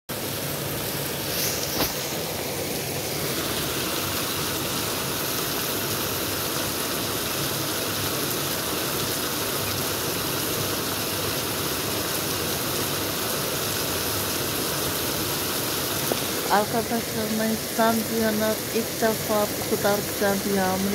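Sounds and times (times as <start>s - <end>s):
heavy rain on pavement: 0.1s - 20.9s
running water: 0.1s - 20.9s.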